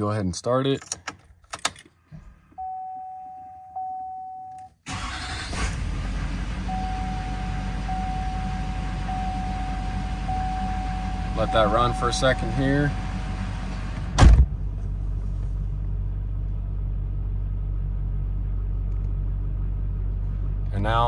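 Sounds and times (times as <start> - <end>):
keys clicking in ignition: 0.7 - 2.0
electronic dash chime: 2.6 - 4.6, 6.7 - 13.2
diesel engine starting and idling: 4.8 - 21.0.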